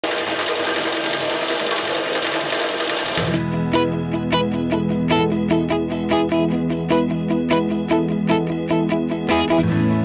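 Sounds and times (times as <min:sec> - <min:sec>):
strummed guitar music: 0:03.2 - 0:10.0.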